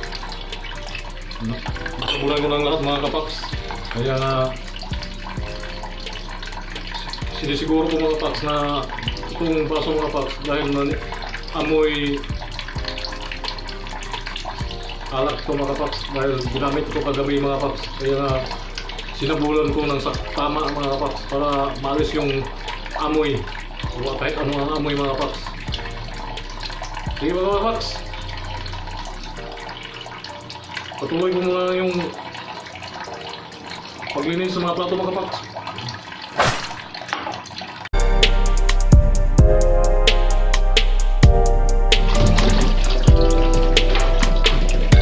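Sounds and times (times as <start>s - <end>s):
glass being rinsed: 0.0s - 37.8s, 41.3s - 45.0s
tap water running into sink: 0.0s - 38.0s, 38.6s - 45.0s.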